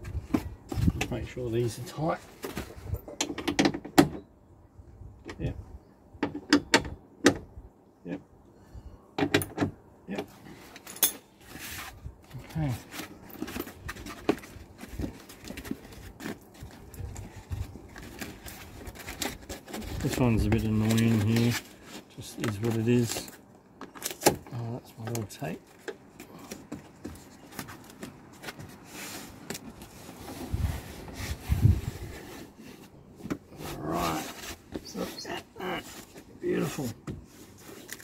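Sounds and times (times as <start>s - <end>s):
hands handling foam and wiring: 10.3s - 38.0s.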